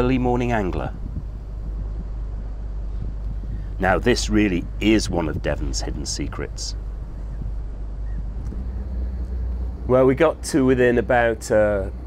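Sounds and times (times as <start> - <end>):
boat motor rumbling: 0.0 - 12.0.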